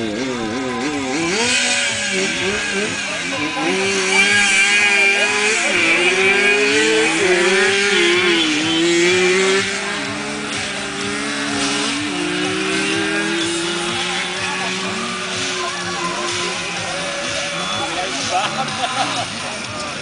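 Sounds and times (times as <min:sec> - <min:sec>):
motorcycle engines revving: 0:00.0 - 0:20.0.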